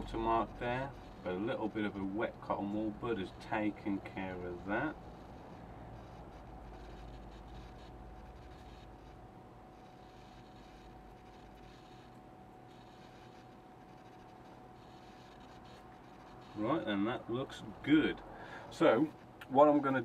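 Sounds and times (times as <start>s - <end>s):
cotton bud rubbing on plastic: 0.0s - 18.2s, 18.8s - 20.0s
faint steady whine: 0.0s - 20.0s
low room hum: 0.0s - 20.0s.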